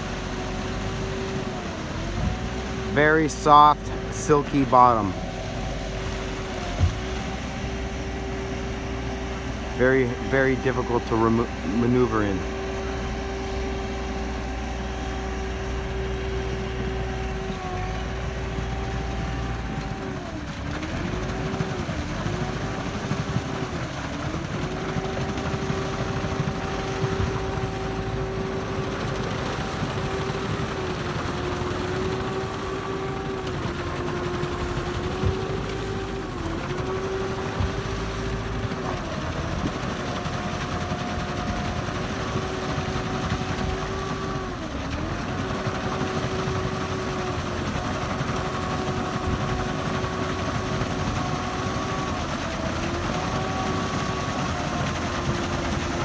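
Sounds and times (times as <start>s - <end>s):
high mechanical engine whine: 0.0s - 56.0s
tyres splashing through slush: 0.0s - 56.0s.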